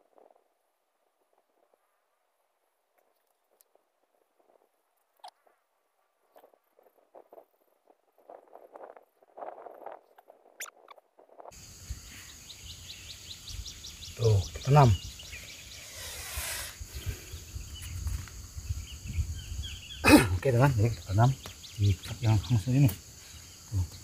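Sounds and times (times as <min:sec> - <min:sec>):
outdoor background noise: 0:00.0 - 0:24.0.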